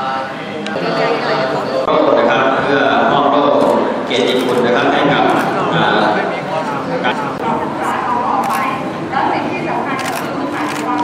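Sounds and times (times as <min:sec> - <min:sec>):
people's voices: 0:00.0 - 0:11.0
camera shutters clicking: 0:08.4 - 0:08.7, 0:10.0 - 0:11.0.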